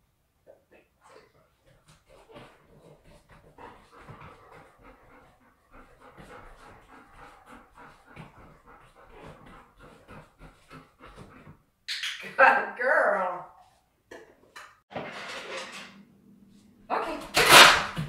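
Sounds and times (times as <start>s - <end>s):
dog panting: 0.8s - 11.8s.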